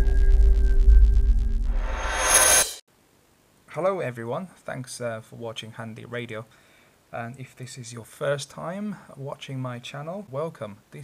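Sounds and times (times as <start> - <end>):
electronic intro music: 0.0 - 2.8
rising noisy swell: 0.0 - 2.8.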